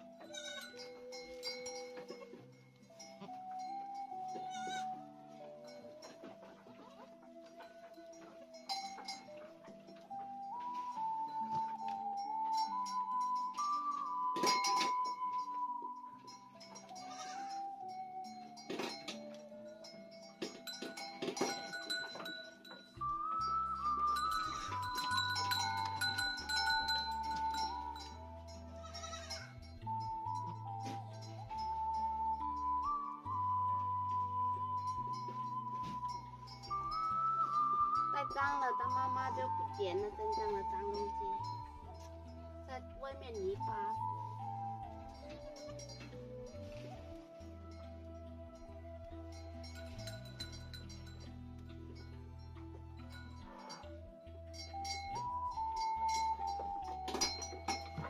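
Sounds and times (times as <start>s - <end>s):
flute-like melody: 0.0s - 58.0s
goat bleating: 0.2s - 0.8s, 4.4s - 5.0s, 17.0s - 17.6s, 28.8s - 29.5s.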